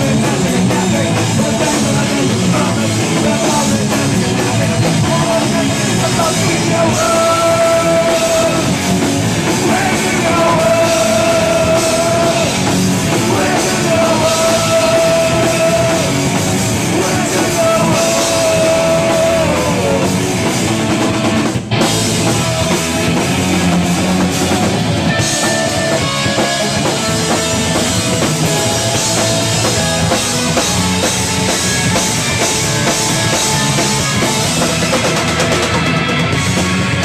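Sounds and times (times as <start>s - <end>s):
bass guitar: 0.0s - 37.0s
drum kit: 0.0s - 37.0s
electric guitar: 0.0s - 37.0s.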